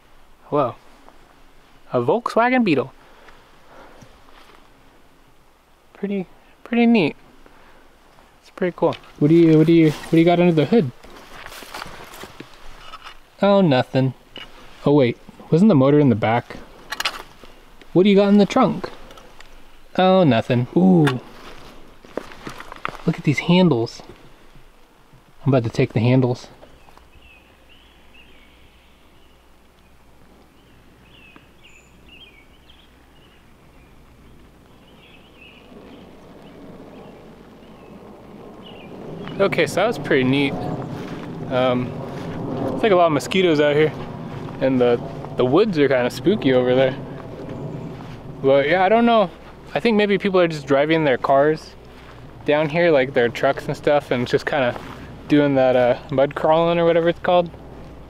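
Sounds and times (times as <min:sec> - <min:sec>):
light scuffing: 0:11.0 - 0:13.2, 0:40.7 - 0:42.8, 0:47.0 - 0:48.4, 0:51.7 - 0:52.5, 0:54.0 - 0:56.0
soft rushing noise: 0:13.9 - 0:58.0
faint bird chirps: 0:26.7 - 0:39.4.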